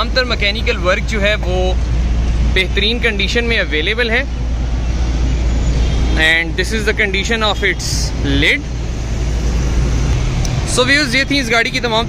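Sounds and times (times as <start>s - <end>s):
car engine idling: 0.0s - 12.0s.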